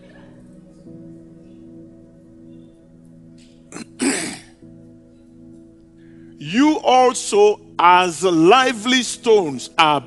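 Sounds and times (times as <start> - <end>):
soft background music: 0.0 - 10.0
man clearing his throat: 3.8 - 4.6.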